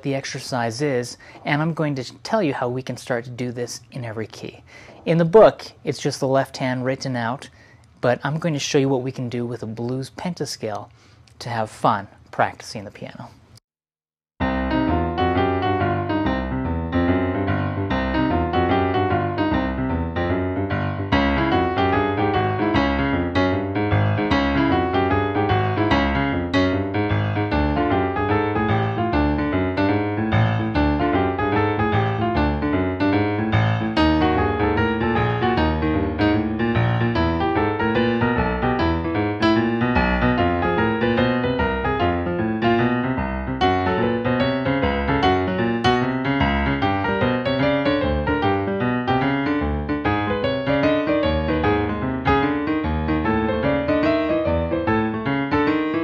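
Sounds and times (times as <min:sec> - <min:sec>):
boogie-woogie piano: 0:14.4 - 0:56.0.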